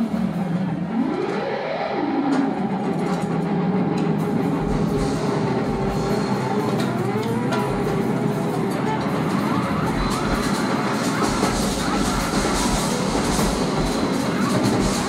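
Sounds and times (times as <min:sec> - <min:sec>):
rock band jamming: 0:00.0 - 0:15.0.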